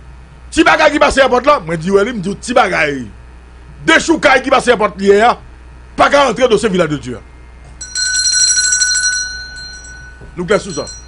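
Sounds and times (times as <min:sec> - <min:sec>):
high electronic ringing with trill: 0:07.8 - 0:11.0.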